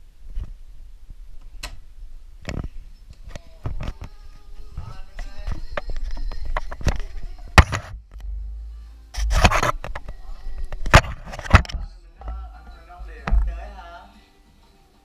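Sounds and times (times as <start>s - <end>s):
camera handling rubbing: 9.2s - 11.8s
knocks on camera body: 13.2s - 13.6s.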